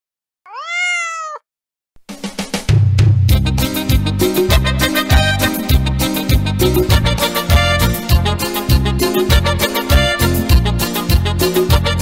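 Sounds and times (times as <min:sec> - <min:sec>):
cat meowing: 0:00.5 - 0:01.4.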